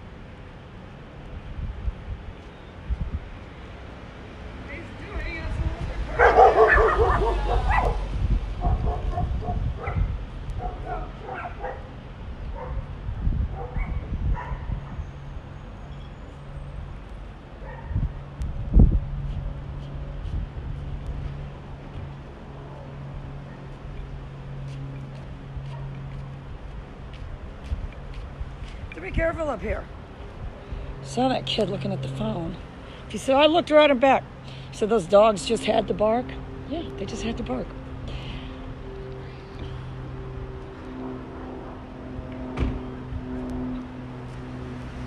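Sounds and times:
dogs barking: 0:06.1 - 0:12.0, 0:12.6 - 0:12.8, 0:13.6 - 0:15.0, 0:17.6 - 0:18.0.

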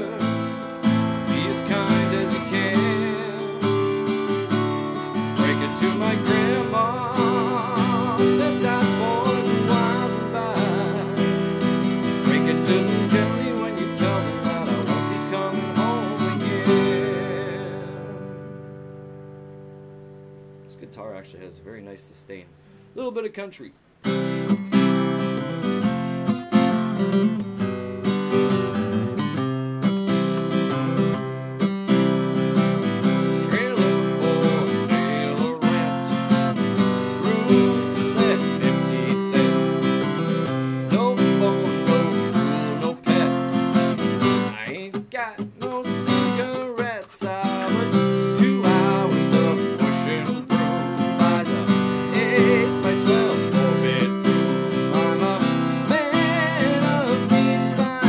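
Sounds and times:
man singing: 0:00.0 - 0:18.4, 0:33.0 - 0:58.0
acoustic guitar strumming chords: 0:00.0 - 0:58.0.

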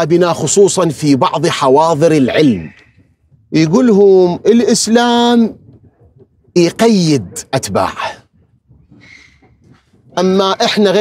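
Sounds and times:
man speaking: 0:00.0 - 0:02.8, 0:03.5 - 0:05.6, 0:06.5 - 0:08.3, 0:10.1 - 0:11.0.

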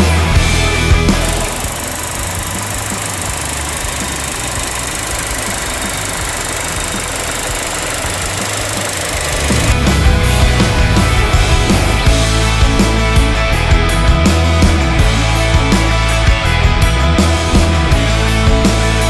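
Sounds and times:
car engine idling: 0:00.0 - 0:19.0
rock music: 0:00.0 - 0:19.0.

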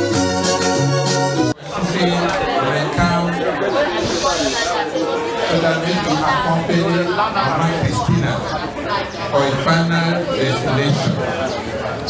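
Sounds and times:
keyboard music: 0:00.0 - 0:07.8
man speaking into a microphone: 0:01.6 - 0:04.7, 0:05.4 - 0:08.6, 0:09.3 - 0:11.5.

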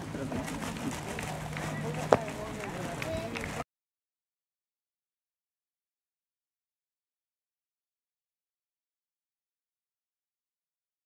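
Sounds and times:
distant players' voices: 0:00.0 - 0:03.6
cricket ball striking bat: 0:02.0 - 0:02.4.

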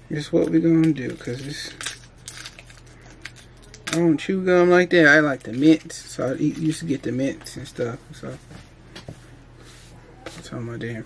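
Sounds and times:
gum wrapper crinkling: 0:00.8 - 0:04.0.

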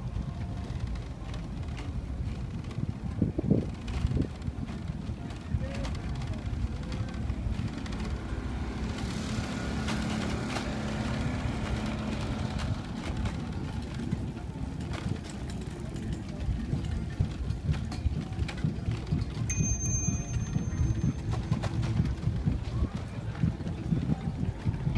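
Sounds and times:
wind rumble on microphone: 0:00.0 - 0:24.9
faint voices: 0:11.8 - 0:24.9.

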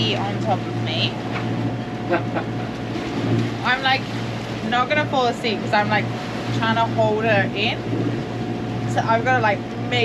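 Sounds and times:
boat engine droning: 0:00.0 - 0:10.0
faint voices: 0:02.1 - 0:02.6.

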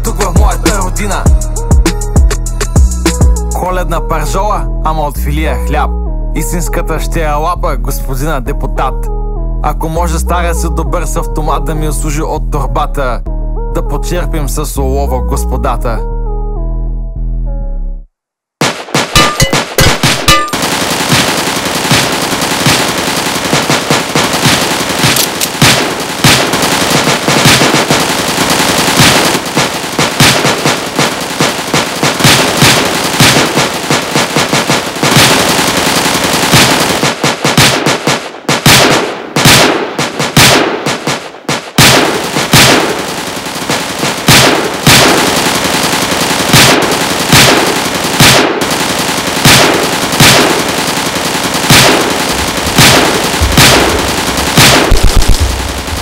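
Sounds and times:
rapid handgun fire: 0:18.6 - 0:56.0.

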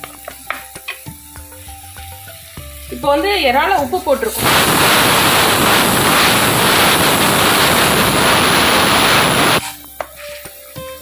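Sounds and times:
background music: 0:00.0 - 0:04.4, 0:09.6 - 0:11.0.

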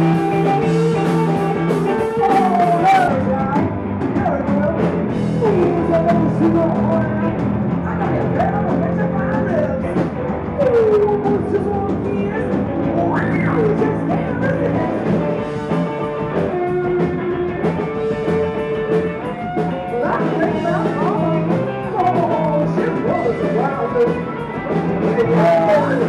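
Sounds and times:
drum kit: 0:00.0 - 0:26.0
electric guitar: 0:00.0 - 0:26.0
woman singing into a microphone: 0:02.1 - 0:10.0, 0:10.6 - 0:15.4, 0:19.8 - 0:26.0.

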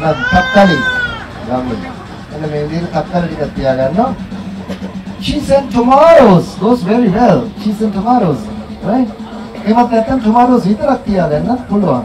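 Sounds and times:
high-pitched drawn-out cry: 0:00.0 - 0:01.9
man talking: 0:00.0 - 0:04.3, 0:05.2 - 0:12.0.

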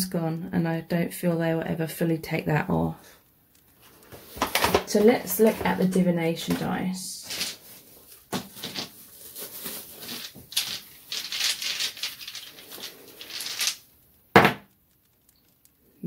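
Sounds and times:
dice rattling in hand: 0:10.1 - 0:15.9
dice knocking when cast: 0:13.3 - 0:14.8.

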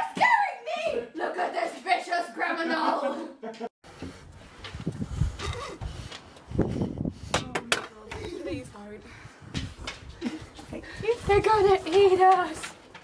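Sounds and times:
voices: 0:10.2 - 0:12.8.

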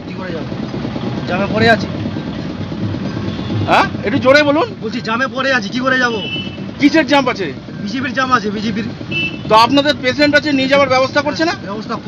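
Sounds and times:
men talking: 0:00.0 - 0:12.0
vehicle low rumble: 0:00.0 - 0:12.0.

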